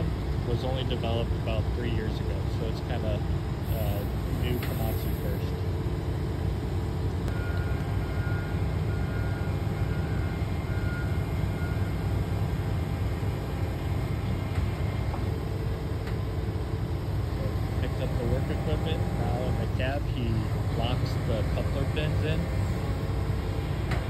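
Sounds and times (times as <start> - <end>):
excavator diesel engine droning: 0.0 - 24.0.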